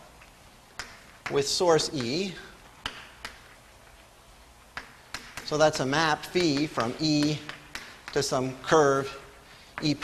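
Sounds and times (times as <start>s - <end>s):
faint room hiss: 0.0s - 10.0s
chalk tapping on a blackboard: 0.8s - 3.6s, 4.7s - 10.0s.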